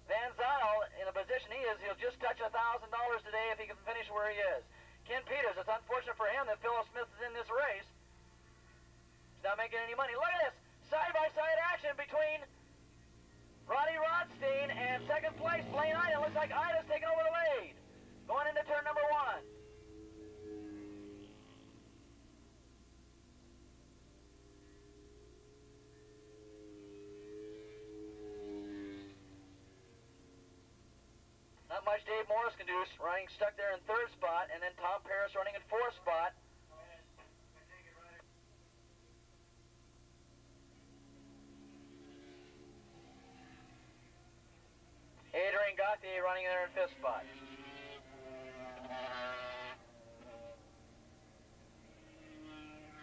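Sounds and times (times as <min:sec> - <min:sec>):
racing motorcycle engines: 0:00.0 - 0:38.3, 0:40.3 - 0:53.0.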